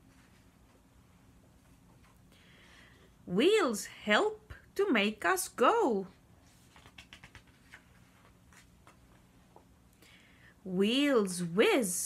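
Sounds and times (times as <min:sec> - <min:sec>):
paper page turning: 0:06.4 - 0:09.1.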